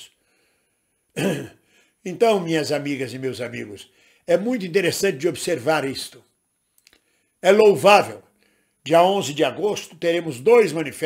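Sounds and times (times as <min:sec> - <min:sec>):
man clearing his throat: 0:01.1 - 0:01.6.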